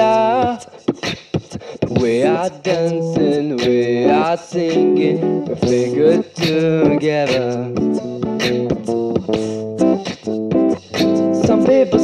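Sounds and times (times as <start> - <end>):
acoustic guitar strumming: 0.0 - 12.0
beatboxed percussion hits: 0.0 - 12.0.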